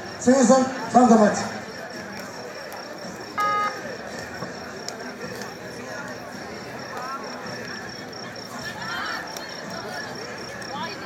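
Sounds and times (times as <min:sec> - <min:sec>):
crowd hubbub: 0:00.0 - 0:11.0
buzzer beep: 0:03.4 - 0:03.8.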